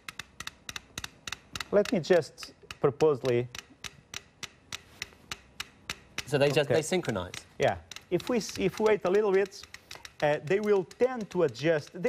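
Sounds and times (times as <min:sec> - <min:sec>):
metronomes ticking: 0:00.0 - 0:12.0.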